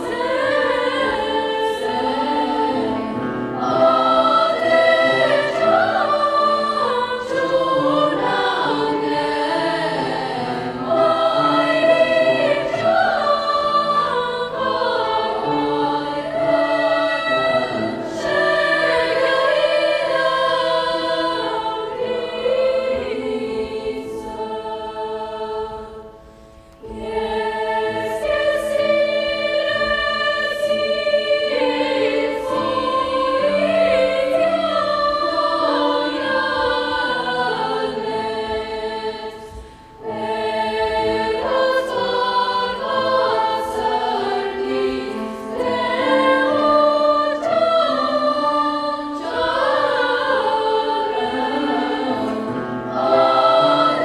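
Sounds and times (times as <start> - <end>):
girls' choir singing in harmony: 0.0 - 54.0.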